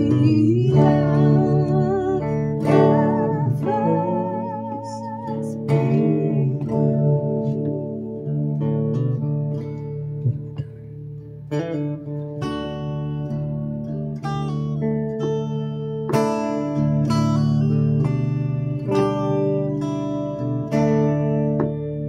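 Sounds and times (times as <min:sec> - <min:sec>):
electric guitar melody and chords: 0:00.0 - 0:22.0.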